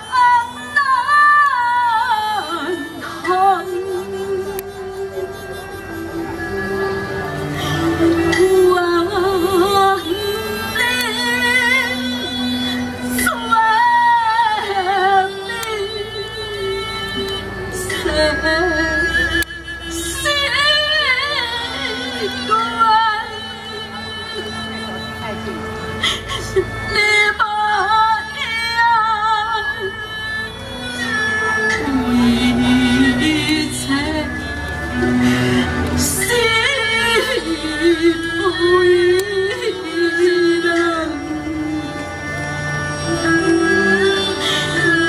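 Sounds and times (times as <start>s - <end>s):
instrumental accompaniment: 0.0s - 45.0s
opera melody with wide vibrato: 0.0s - 45.0s.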